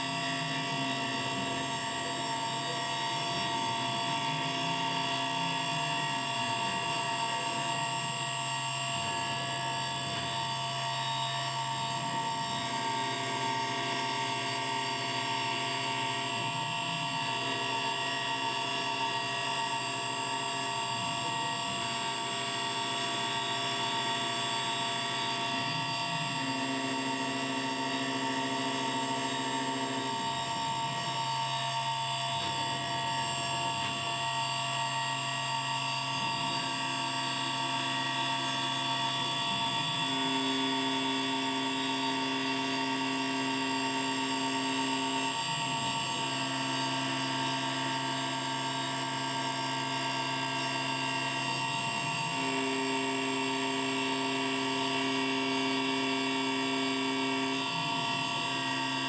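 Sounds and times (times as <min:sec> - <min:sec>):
milling machine high whine: 0:00.0 - 0:59.0.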